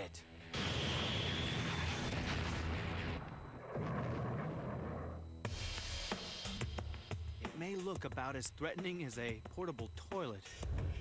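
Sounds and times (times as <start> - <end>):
explosions: 0.6 - 5.2.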